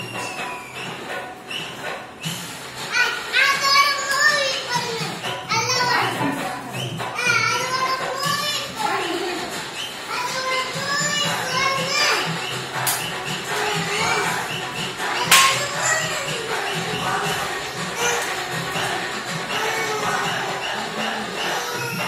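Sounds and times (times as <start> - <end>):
music with a steady beat: 0.0 - 22.0
children calling out and chattering: 2.4 - 22.0.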